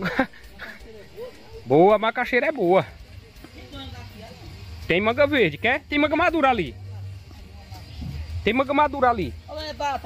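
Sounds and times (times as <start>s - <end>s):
faint background speech: 0.0s - 10.0s.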